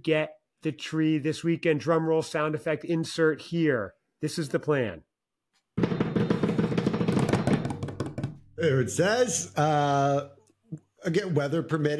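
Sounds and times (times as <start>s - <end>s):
drum roll: 5.8s - 9.9s.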